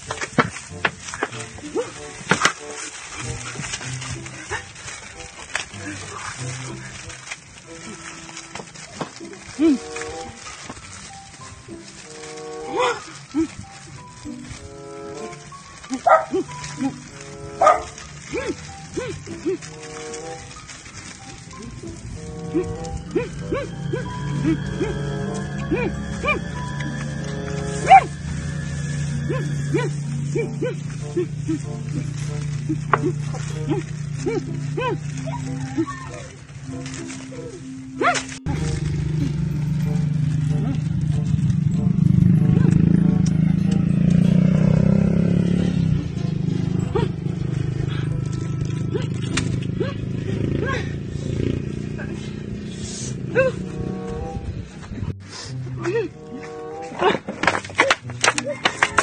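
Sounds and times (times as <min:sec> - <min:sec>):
music with held notes: 0:00.0 - 0:59.0
low hum: 0:21.6 - 0:35.5
high yelp-like cry: 0:33.7 - 0:36.4
short yelp: 0:38.0 - 0:38.3.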